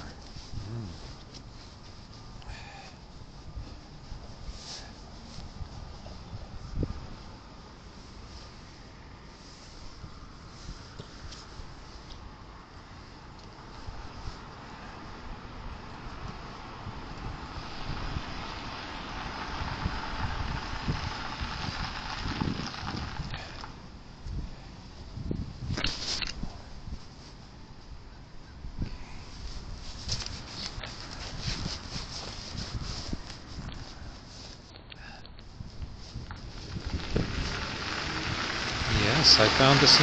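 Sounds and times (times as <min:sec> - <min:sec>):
wind rumbling on microphone: 0:00.0 - 0:01.7, 0:02.3 - 0:08.7, 0:09.4 - 0:34.4, 0:35.4 - 0:40.0
vehicle passing: 0:14.5 - 0:23.7, 0:36.4 - 0:40.0.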